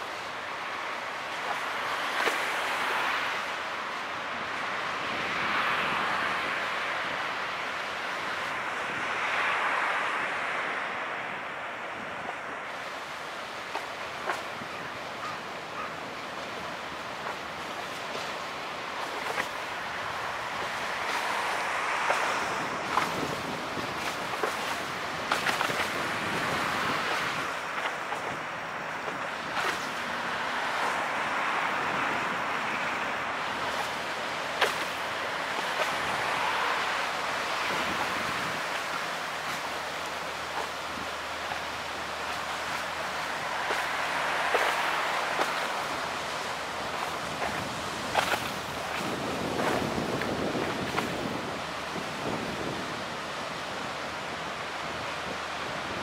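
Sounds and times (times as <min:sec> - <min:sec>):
choppy water: 0:00.0 - 0:56.0
rushing wind: 0:00.0 - 0:56.0.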